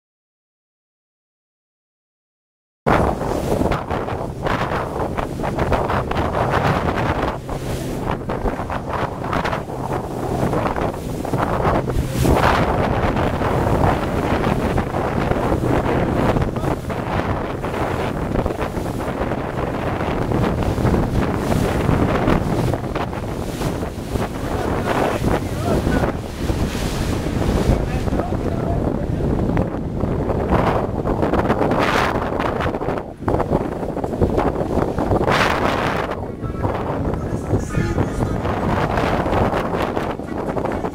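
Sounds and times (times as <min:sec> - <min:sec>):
sea splashing against boat hull: 0:02.9 - 0:28.5
boat motor humming: 0:02.9 - 0:31.3, 0:33.0 - 0:40.9
wind buffeting the microphone: 0:02.9 - 0:40.9.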